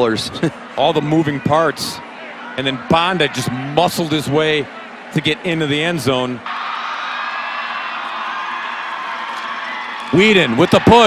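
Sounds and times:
stadium crowd cheering and shouting: 0.0s - 11.0s.

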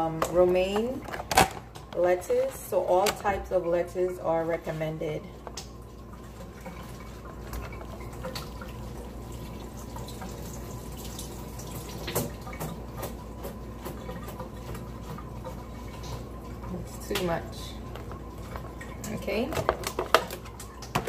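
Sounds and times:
tap running water: 0.0s - 21.0s.

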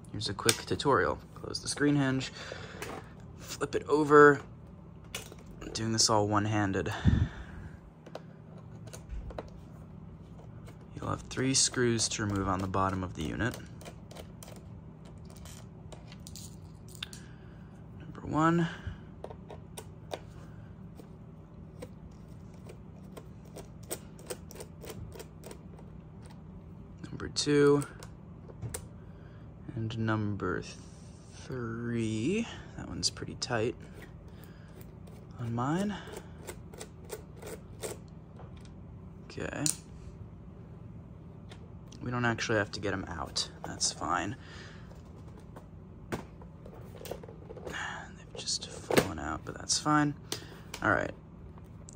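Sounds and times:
screwdriver clicking and scraping: 21.8s - 26.4s, 36.1s - 38.1s.

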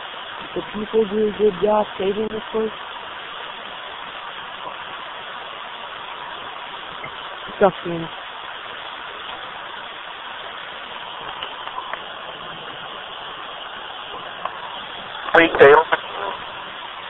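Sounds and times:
radio static hiss: 0.0s - 17.0s
faint radio station fragments: 15.2s - 16.5s.

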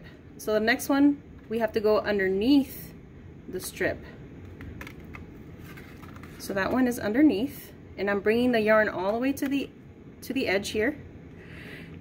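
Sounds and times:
low room hum: 0.0s - 12.0s
paper cup and yarn rustling: 4.7s - 6.8s.

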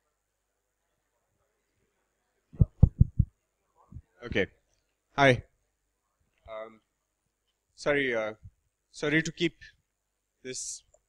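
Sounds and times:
thumps on a microphone: 2.6s - 3.3s.

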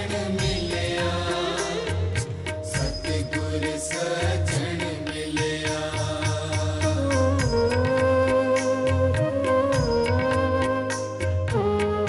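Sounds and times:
devotional chant singing: 0.0s - 9.1s
tabla strokes: 0.0s - 12.0s.

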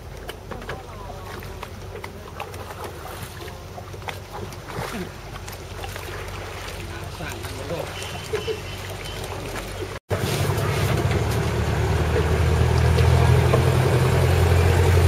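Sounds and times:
boat engine humming: 0.0s - 15.0s
people talking: 0.5s - 2.5s, 6.8s - 9.2s, 10.4s - 11.2s, 13.0s - 13.7s.

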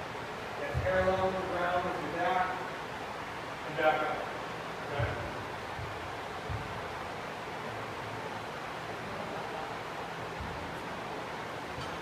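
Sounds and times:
steady background hiss: 0.0s - 12.0s
faint low thuds: 0.6s - 1.4s, 4.8s - 7.2s, 10.3s - 10.8s.

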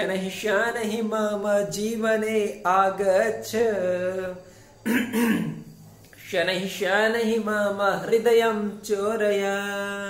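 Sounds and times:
man singing unaccompanied: 0.0s - 5.6s, 6.2s - 10.0s
man clearing throat: 4.8s - 5.6s.

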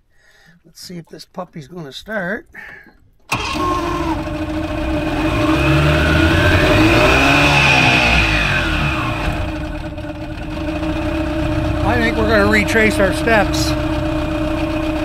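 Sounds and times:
outboard motor starting and revving: 3.3s - 15.0s.

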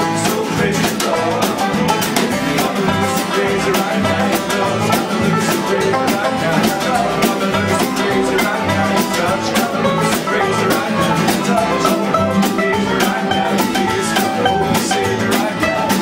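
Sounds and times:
banjo band playing: 0.0s - 16.0s
percussive beat: 0.0s - 16.0s.

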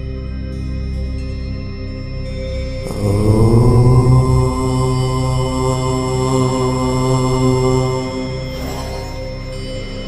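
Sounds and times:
faint ambient drone: 0.0s - 10.0s
deep voice chanting om: 2.8s - 9.7s.

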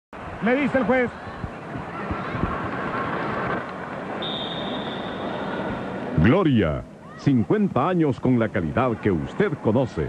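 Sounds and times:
crowd chatter: 0.2s - 10.0s.

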